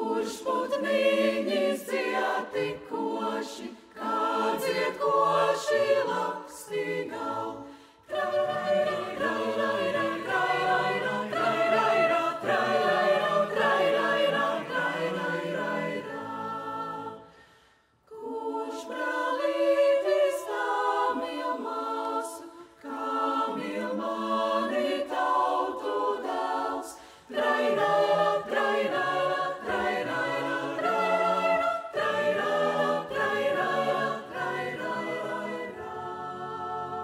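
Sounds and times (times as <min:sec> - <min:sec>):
mixed choir singing a cappella: 0:00.0 - 0:37.0.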